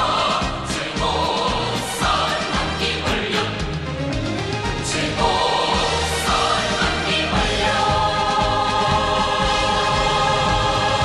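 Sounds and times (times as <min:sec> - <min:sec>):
choir singing with instruments: 0:00.0 - 0:11.0.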